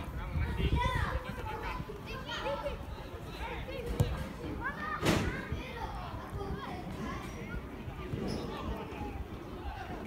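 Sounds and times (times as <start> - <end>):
children calling and shouting: 0.0 - 10.0.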